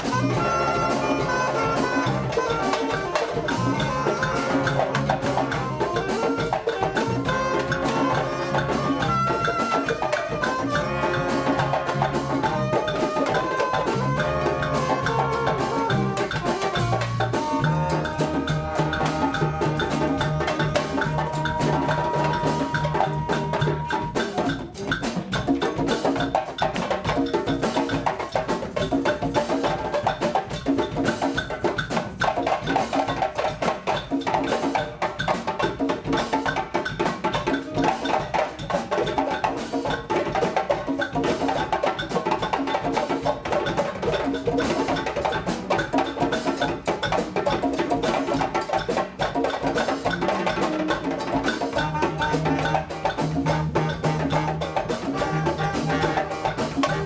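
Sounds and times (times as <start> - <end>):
congas: 0.0 - 57.0
live band playing funky groove: 0.0 - 57.0
steady percussion pattern: 0.0 - 57.0.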